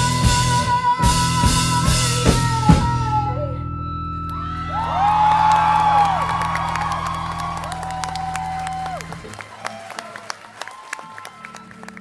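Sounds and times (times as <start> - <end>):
crowd whooping and cheering: 4.3 - 12.0
crowd clapping: 4.6 - 12.0.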